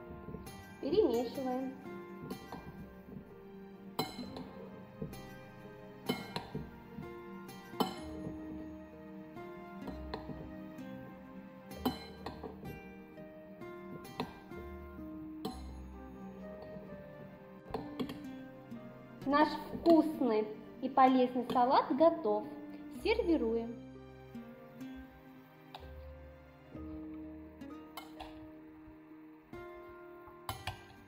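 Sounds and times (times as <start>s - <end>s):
background music: 0.0s - 31.0s.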